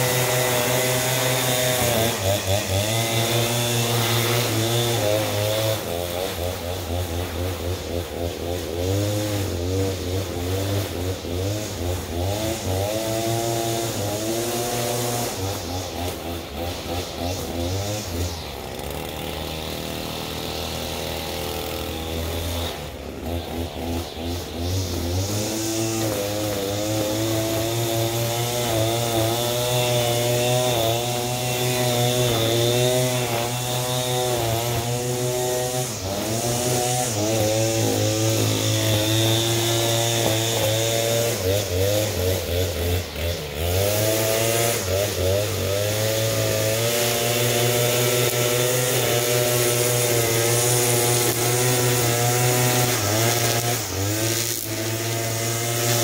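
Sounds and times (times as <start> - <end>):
string trimmer cutting grass: 0.0 - 56.0.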